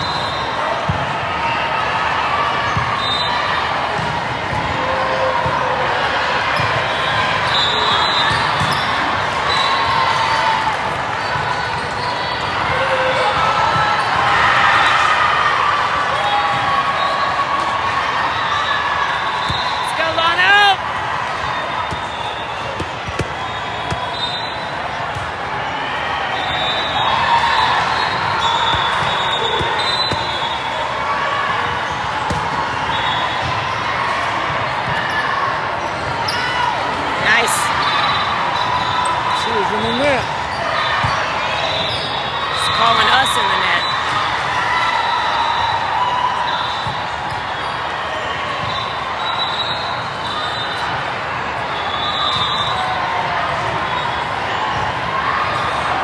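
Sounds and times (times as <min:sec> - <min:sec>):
volleyballs bounced and struck: 0:03.8 - 0:05.8, 0:08.1 - 0:09.4, 0:21.3 - 0:25.6, 0:28.2 - 0:30.6, 0:31.8 - 0:32.8.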